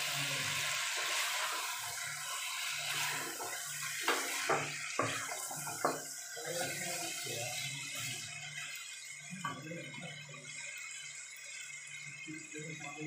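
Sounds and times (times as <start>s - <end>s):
meat sizzling in oil: 0.0s - 12.6s.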